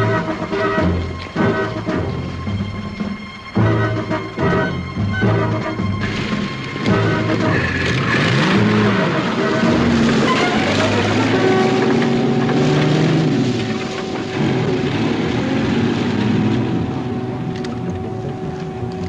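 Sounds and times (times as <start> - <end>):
vehicle engine running: 0.0 - 19.0.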